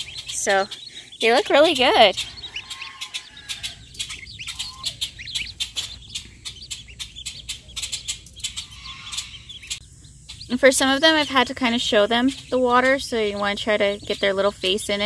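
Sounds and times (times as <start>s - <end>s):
ducklings peeping: 0.0s - 15.0s.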